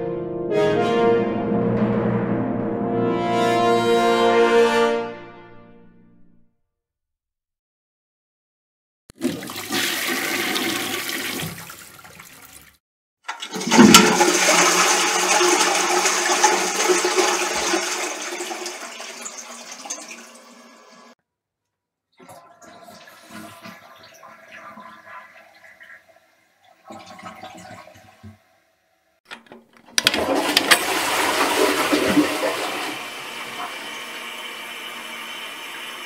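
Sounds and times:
toilet flushing: 0:09.1 - 0:21.2, 0:22.2 - 0:28.8, 0:29.9 - 0:36.0.

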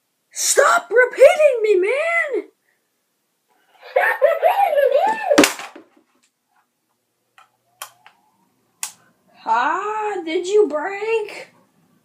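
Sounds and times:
toy thumping down: 0:05.1 - 0:06.0.

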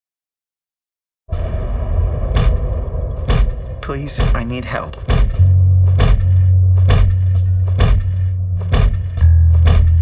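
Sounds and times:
low rumbling drone: 0:01.3 - 0:10.0.

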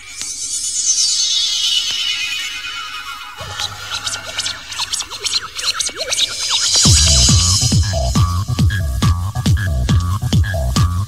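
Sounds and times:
faint electronic music: 0:00.0 - 0:09.6
turntable scratching: 0:01.2 - 0:10.9.

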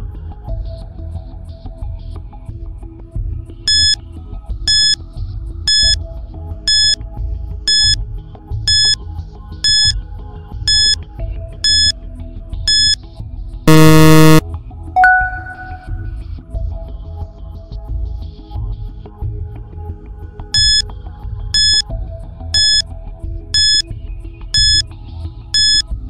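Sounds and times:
loud buzzer: 0:03.7 - 0:04.0, 0:04.7 - 0:05.0, 0:05.7 - 0:06.0, 0:06.7 - 0:07.0, 0:07.7 - 0:08.0, 0:08.7 - 0:09.0, 0:09.6 - 0:10.0, 0:10.7 - 0:11.0, 0:11.6 - 0:11.9, 0:12.7 - 0:13.0, 0:13.7 - 0:14.4, 0:20.6 - 0:20.8, 0:21.6 - 0:21.8, 0:22.6 - 0:22.8, 0:23.6 - 0:23.8, 0:24.6 - 0:24.8, 0:25.6 - 0:25.8
short countdown beeps: 0:03.7 - 0:04.0, 0:04.7 - 0:05.0, 0:05.7 - 0:06.0, 0:06.7 - 0:07.0, 0:07.7 - 0:08.0, 0:08.7 - 0:09.0, 0:09.6 - 0:10.0, 0:10.7 - 0:11.0, 0:11.6 - 0:11.9, 0:12.7 - 0:13.0, 0:13.7 - 0:14.4, 0:15.0 - 0:16.1, 0:20.6 - 0:20.8, 0:21.6 - 0:21.8, 0:22.6 - 0:22.8, 0:23.6 - 0:23.8, 0:24.6 - 0:24.8, 0:25.6 - 0:25.8
ringing chime: 0:15.0 - 0:16.1.

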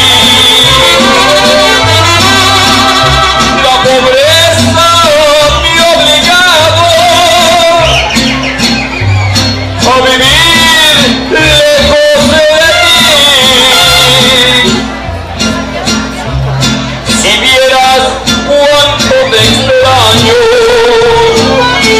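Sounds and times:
man singing with vibrato: 0:00.0 - 0:08.7, 0:09.4 - 0:15.1, 0:17.0 - 0:21.9
plucked bass guitar notes: 0:00.0 - 0:21.9
strummed guitars: 0:00.0 - 0:21.9.

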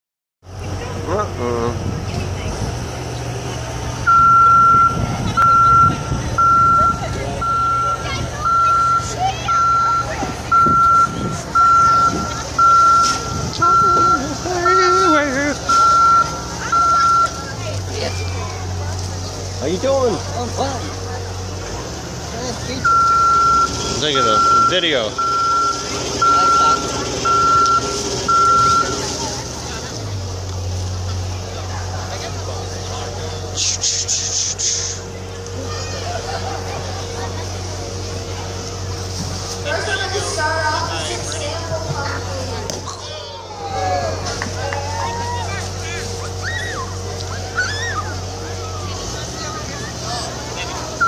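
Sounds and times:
low engine hum: 0:00.4 - 0:51.0
motion alarm beeping: 0:04.0 - 0:15.1, 0:15.7 - 0:17.6, 0:22.8 - 0:29.3.

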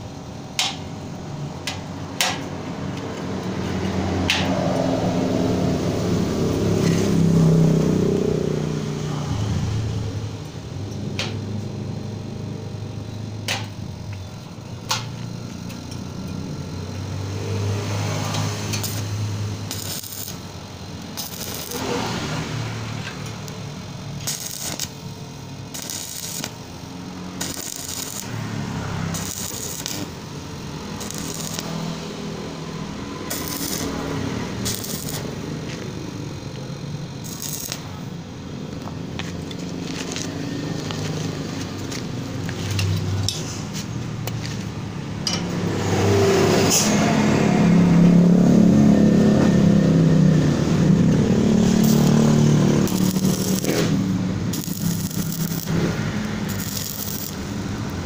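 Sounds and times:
crackling welding arc: 0:00.0 - 0:47.0, 0:48.6 - 0:58.0
sharp clicks: 0:13.4 - 0:16.4.

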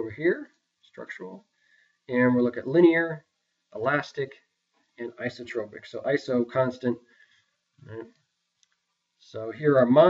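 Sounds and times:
person speaking: 0:00.0 - 0:08.3, 0:09.2 - 0:10.0.

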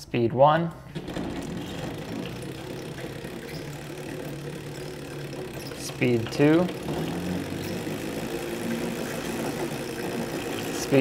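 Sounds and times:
electric go-kart motor hum: 0:00.9 - 0:11.0.

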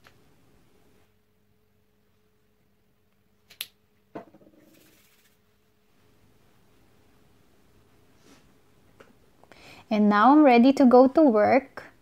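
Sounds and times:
sharp snaps: 0:03.1 - 0:03.8.

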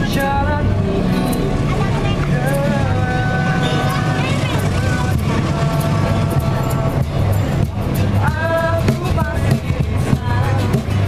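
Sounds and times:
man singing: 0:00.0 - 0:01.1, 0:02.2 - 0:11.0
strummed acoustic guitar: 0:00.0 - 0:11.0.

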